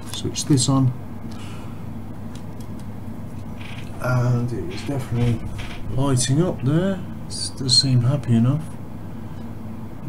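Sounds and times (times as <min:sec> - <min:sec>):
transformer electrical hum: 0:00.0 - 0:10.0.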